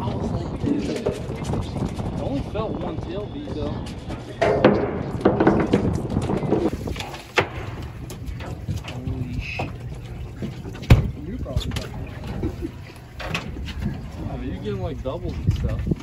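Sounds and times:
boat engine rumble: 0.0 - 16.0
wind: 0.0 - 16.0
knocks: 4.4 - 6.7.

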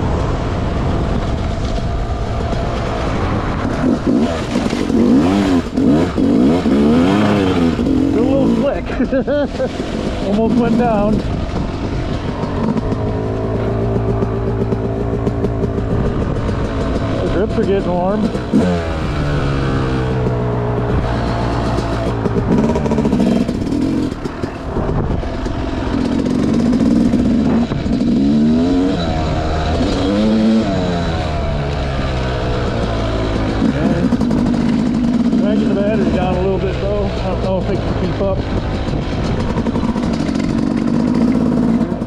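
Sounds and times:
dirt bike engine revving: 0.0 - 42.0.

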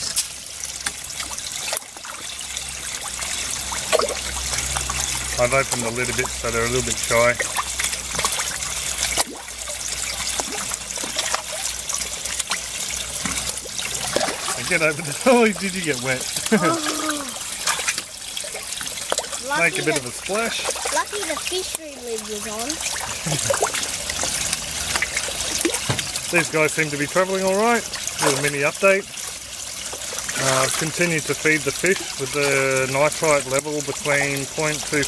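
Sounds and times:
fish splashing at surface: 0.0 - 35.0
water trickling into tank: 0.0 - 35.0.

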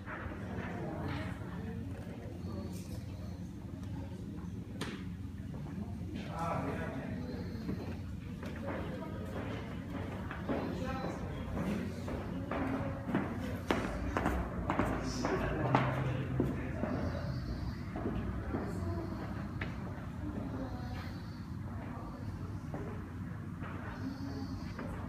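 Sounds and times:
people talking indistinctly: 0.4 - 25.0.

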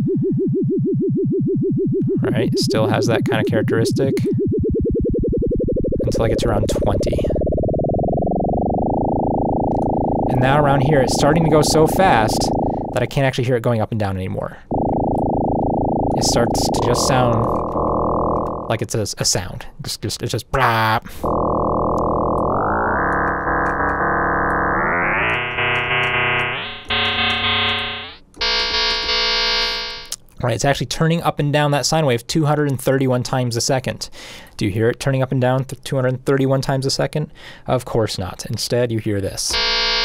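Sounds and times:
wobbling synthesizer tone: 0.0 - 13.3, 14.7 - 18.8, 21.2 - 30.1.

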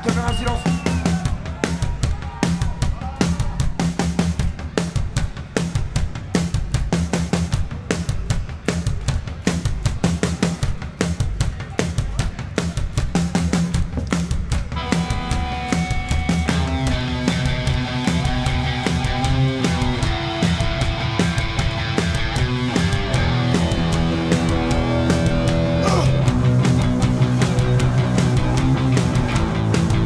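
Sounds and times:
rock drum beat: 0.0 - 30.0
electric guitars and bass: 14.8 - 30.0.

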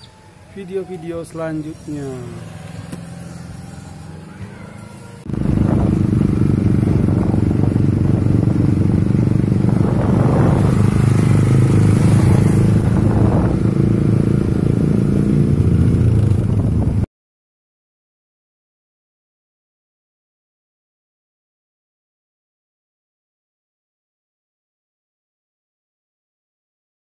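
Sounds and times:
small motorcycle engine running: 0.0 - 17.0.

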